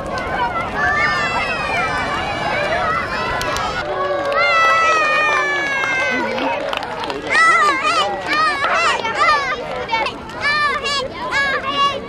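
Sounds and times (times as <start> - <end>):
children shouting: 0.0 - 12.0
crowd chatter: 0.0 - 12.0.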